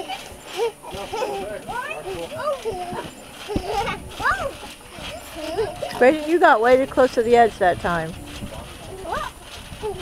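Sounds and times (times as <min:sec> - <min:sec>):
thump of landing on trampoline: 0:00.2 - 0:06.1.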